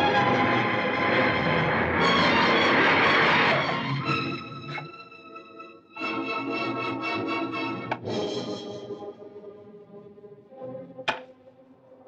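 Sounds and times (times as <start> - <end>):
organ-like chords: 0.0 - 12.0.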